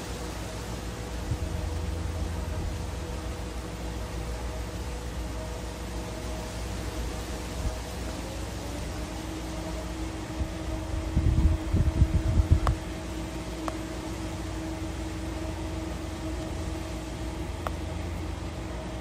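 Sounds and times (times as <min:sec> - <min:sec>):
wind buffeting microphone: 0:00.0 - 0:05.9, 0:06.7 - 0:19.0.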